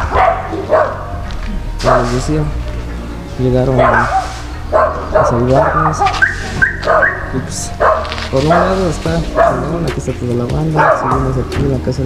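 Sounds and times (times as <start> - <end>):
dog barking: 0.0 - 1.2, 1.8 - 2.3, 3.8 - 9.9, 10.6 - 11.5.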